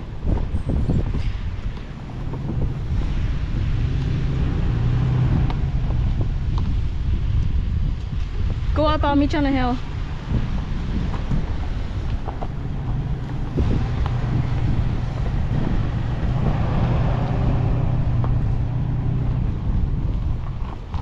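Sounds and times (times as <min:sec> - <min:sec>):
truck engine running: 0:00.0 - 0:08.5, 0:09.8 - 0:21.0
wind buffeting microphone: 0:00.0 - 0:21.0.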